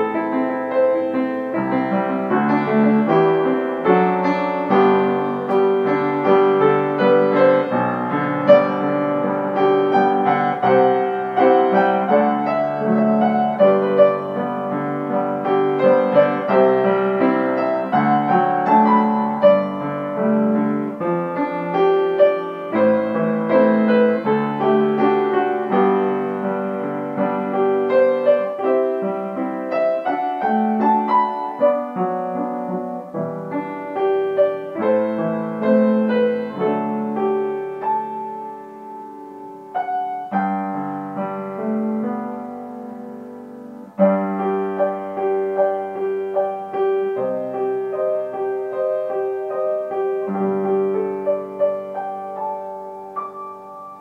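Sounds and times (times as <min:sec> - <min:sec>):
solo piano: 0:00.0 - 0:54.0.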